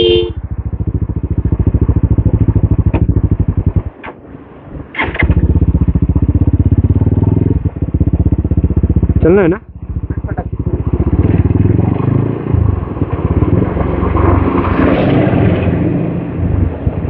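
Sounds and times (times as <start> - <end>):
motorcycle engine running: 0.0 - 4.2, 4.8 - 15.0.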